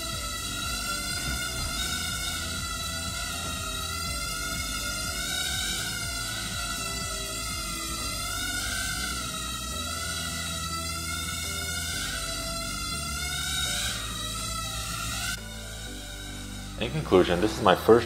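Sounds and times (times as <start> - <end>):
background music with steady beat: 0.0 - 18.0
high whine of drone motors: 0.0 - 18.0.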